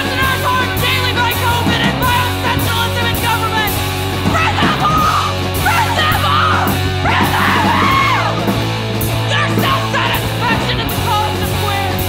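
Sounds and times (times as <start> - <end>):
punk band playing: 0.0 - 12.0
yelled vocals: 0.0 - 12.0.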